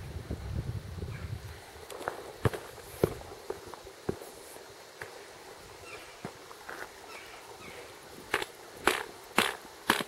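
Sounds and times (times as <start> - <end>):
footsteps on rocky trail: 1.9 - 10.0
walking stick tapping rocks: 6.2 - 7.4, 8.2 - 10.0.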